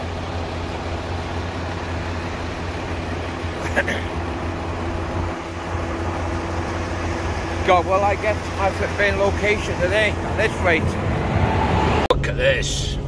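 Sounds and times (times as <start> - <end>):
truck diesel engine idling: 0.0 - 11.3.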